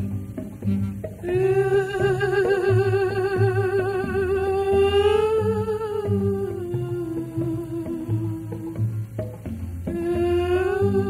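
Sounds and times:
soft bass and guitar backing: 0.0s - 11.0s.

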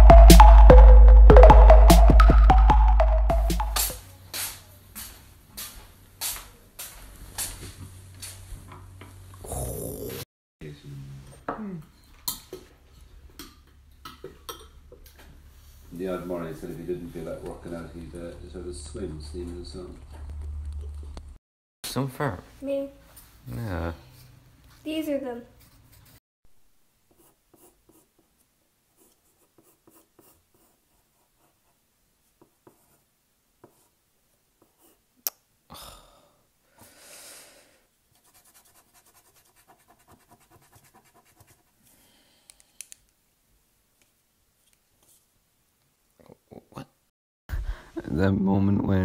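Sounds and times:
pencil scratching on paper: 25.5s - 26.2s, 27.1s - 28.4s, 29.0s - 34.0s, 34.6s - 35.0s, 38.1s - 41.8s.

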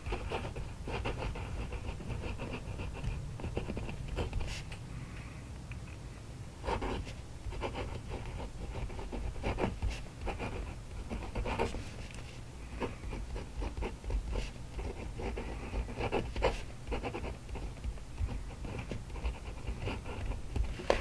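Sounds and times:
pen nib scratching paper: 0.0s - 4.6s, 6.7s - 12.0s, 12.8s - 21.0s
low steady hum: 0.0s - 21.0s.

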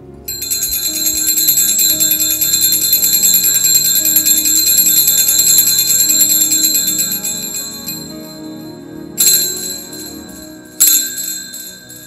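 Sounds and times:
hand bells jingling: 0.4s - 8.6s, 9.2s - 12.0s.

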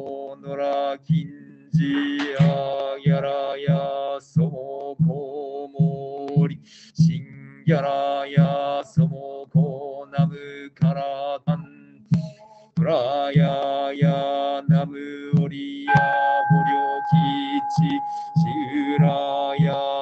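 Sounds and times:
man chanting: 0.0s - 20.0s
wooden drum knocks: 1.9s - 2.6s.

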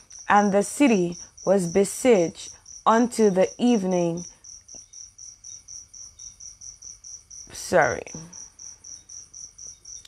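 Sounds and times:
insect chirping: 0.0s - 10.0s.

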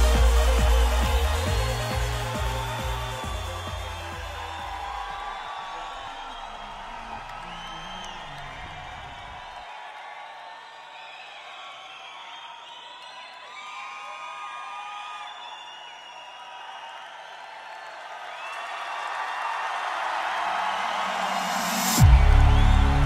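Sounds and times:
high synth sounds with gliding pitches: 0.0s - 5.0s
techno kick and bass: 0.0s - 5.2s, 22.0s - 23.0s.

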